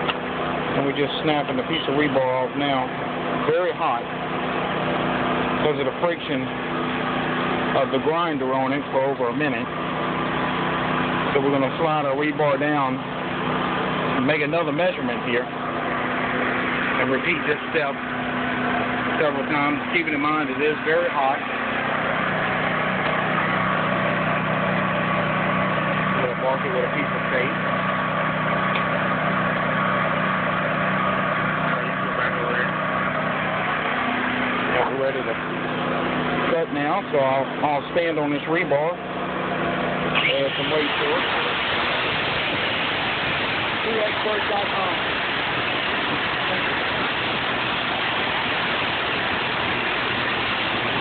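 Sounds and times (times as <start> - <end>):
motor running steadily: 0.0 - 51.0.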